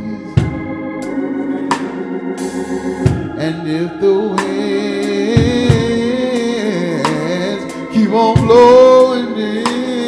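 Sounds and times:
low bass note: 0:00.0 - 0:09.8
electric organ chord: 0:00.0 - 0:10.0
drum kit hit: 0:00.4 - 0:03.5.

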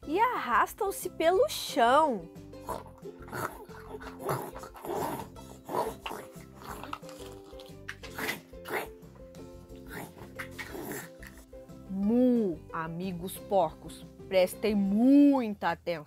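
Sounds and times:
light background music: 0:00.0 - 0:16.0.

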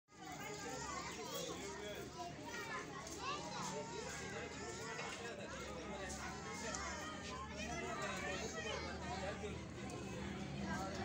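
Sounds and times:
children talking and calling out: 0:00.1 - 0:11.0.

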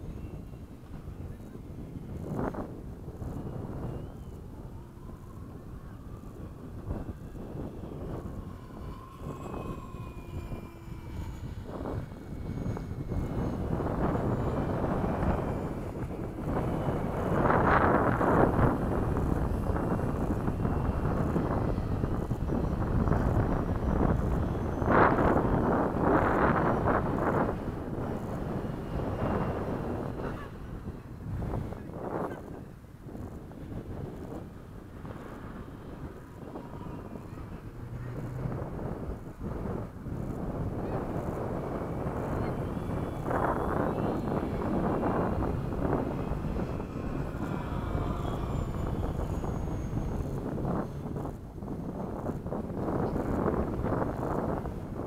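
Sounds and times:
model airplane motor whine: 0:00.0 - 0:55.0
wind buffeting microphone: 0:00.0 - 0:55.0.

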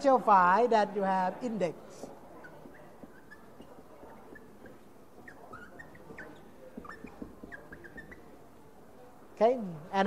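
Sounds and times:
marker squeaking on whiteboard: 0:02.0 - 0:08.8.

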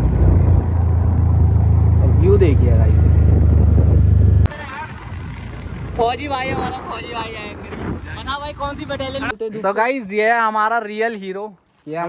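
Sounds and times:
road and wind noise: 0:00.0 - 0:09.5.

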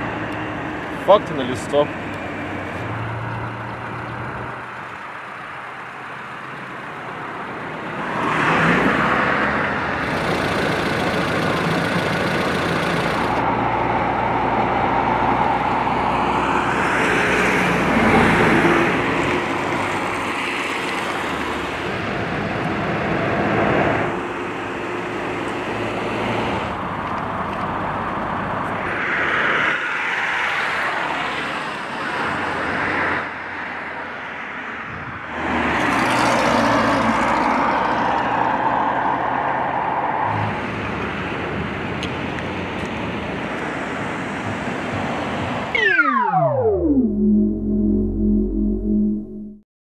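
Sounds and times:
vehicles driving past: 0:00.0 - 0:49.5.

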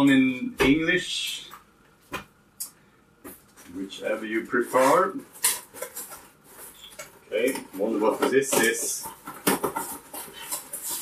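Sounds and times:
cardboard scraping rustles: 0:07.6 - 0:11.0.

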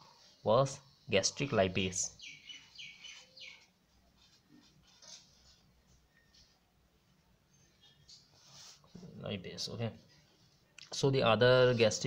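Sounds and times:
marker scratching on paper: 0:03.1 - 0:06.6.

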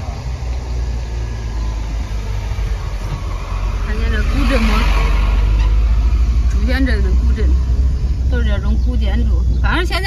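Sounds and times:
car cabin engine and road noise: 0:00.0 - 0:10.0.

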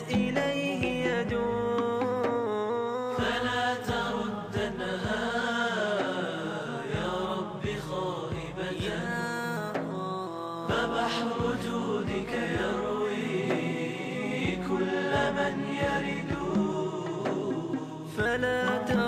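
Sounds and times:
chorus singing without words: 0:00.0 - 0:19.0.

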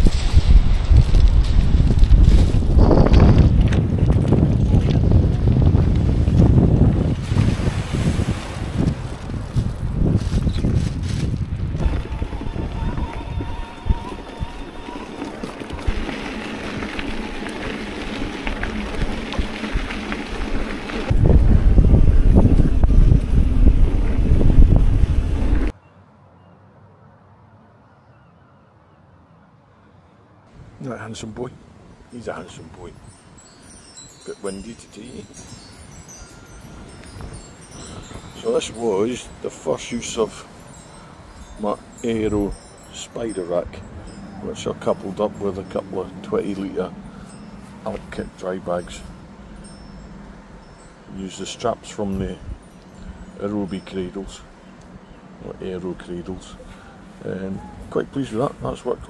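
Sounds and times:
wind buffeting microphone: 0:00.0 - 0:25.7, 0:32.8 - 0:51.2, 0:51.9 - 0:55.4.

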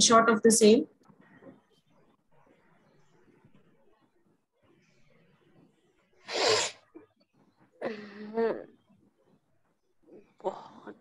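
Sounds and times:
person sneezing: 0:06.3 - 0:06.9.

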